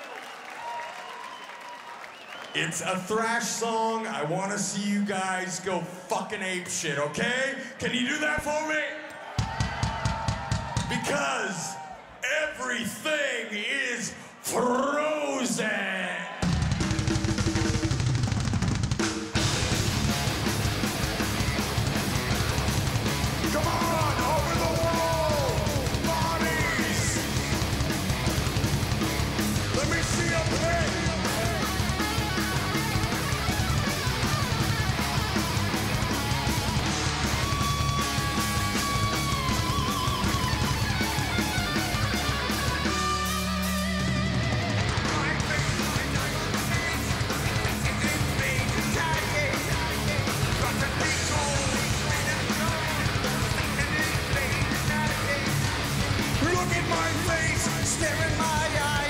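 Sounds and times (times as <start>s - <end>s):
thrash metal band playing live: 16.4s - 59.0s.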